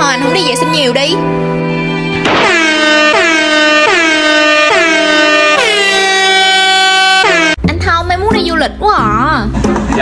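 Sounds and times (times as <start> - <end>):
comedic horn-like tune: 2.2 - 7.6.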